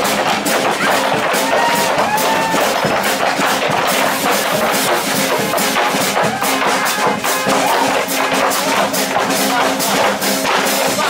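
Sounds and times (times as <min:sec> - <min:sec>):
shoes stomping on wooden boards: 0:00.0 - 0:10.8.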